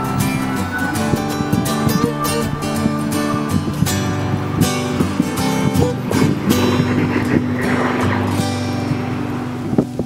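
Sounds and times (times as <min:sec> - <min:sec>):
acoustic guitar plucking: 0:00.0 - 0:10.0.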